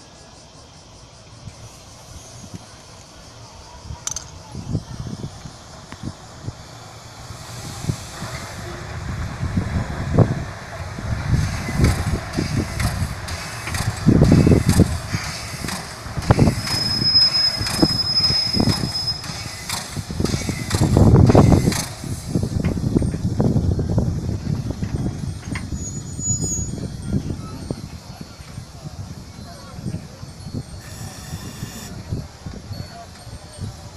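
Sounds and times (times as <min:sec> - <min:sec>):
hissing steam: 0:00.0 - 0:24.8
steam locomotive exhaust puffs: 0:00.0 - 0:33.9
thin high squeal: 0:16.4 - 0:19.8, 0:25.7 - 0:27.8, 0:30.4 - 0:33.9.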